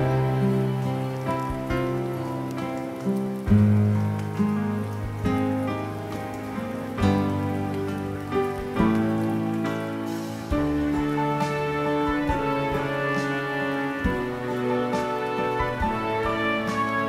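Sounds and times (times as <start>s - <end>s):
gentle instrumental chords: 0.0s - 17.0s.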